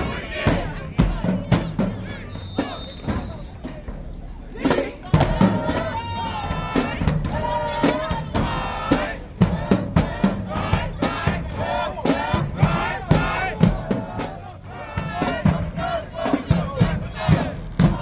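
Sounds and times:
people shouting a chant: 0:00.0 - 0:18.0.

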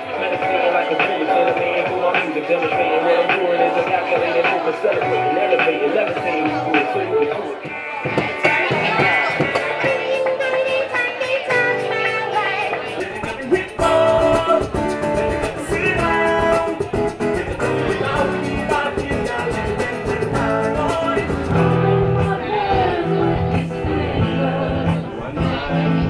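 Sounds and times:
acoustic guitar playing: 0:00.0 - 0:26.0
person singing: 0:00.0 - 0:26.0.

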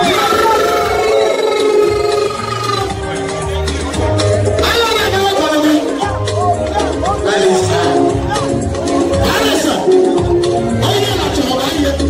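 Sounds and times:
live music through loudspeakers: 0:00.0 - 0:12.0.

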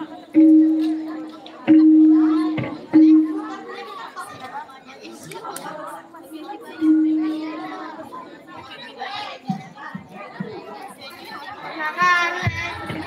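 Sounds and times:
ringing low percussion strikes: 0:00.0 - 0:04.0, 0:06.6 - 0:08.2
background chatter: 0:00.0 - 0:13.0.

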